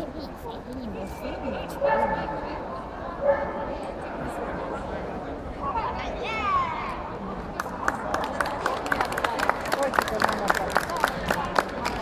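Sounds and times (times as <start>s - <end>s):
chatter of people: 0.0s - 12.0s
dog barking: 1.8s - 2.4s, 3.2s - 3.7s.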